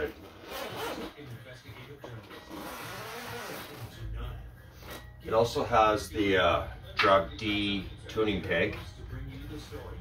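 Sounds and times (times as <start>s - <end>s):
zipper being pulled open: 0.2s - 1.2s, 2.5s - 4.0s.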